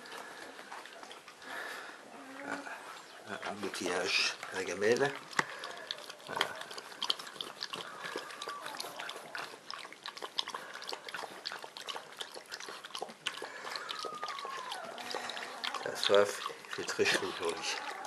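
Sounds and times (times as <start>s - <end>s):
puppy lapping water from bowl: 3.3s - 18.0s.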